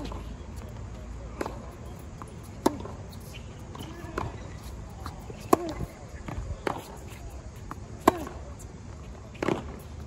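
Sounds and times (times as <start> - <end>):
tennis ball bounce: 1.3 - 3.0, 5.4 - 6.9, 8.0 - 8.4, 9.4 - 9.8
racket striking ball: 2.6 - 3.0, 5.0 - 6.9, 8.0 - 8.4, 9.4 - 9.8.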